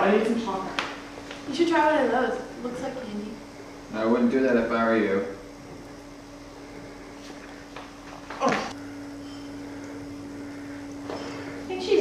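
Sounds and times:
low hum: 0:05.2 - 0:12.0.

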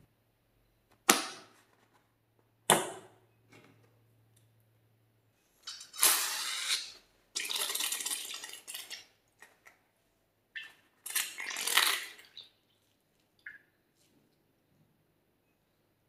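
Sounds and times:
slime squirting and spluttering: 0:05.7 - 0:09.0, 0:11.0 - 0:12.4.

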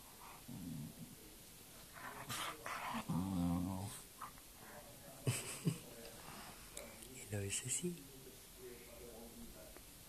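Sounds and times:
dog growling low: 0:02.9 - 0:04.0.

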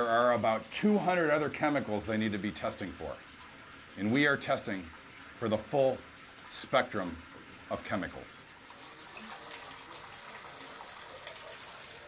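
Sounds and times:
tap water running into tub: 0:00.0 - 0:12.0.

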